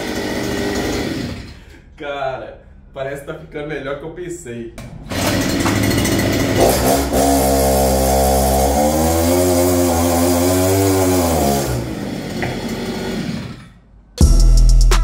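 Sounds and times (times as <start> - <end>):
two-stroke engine revving: 0.0 - 1.5, 5.0 - 13.7
tyre spinning on friction roller: 5.1 - 13.7.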